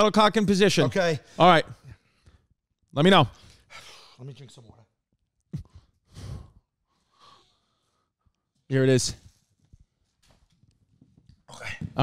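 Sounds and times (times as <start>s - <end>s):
person exhaling: 6.1s - 7.6s.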